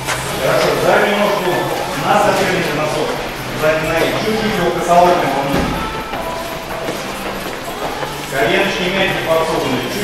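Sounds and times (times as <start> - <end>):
feet shuffling on gym floor: 0.0 - 10.0.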